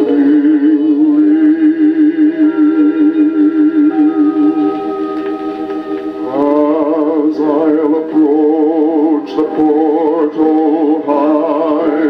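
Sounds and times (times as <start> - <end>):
man singing with vibrato on old record: 0.0 - 12.0.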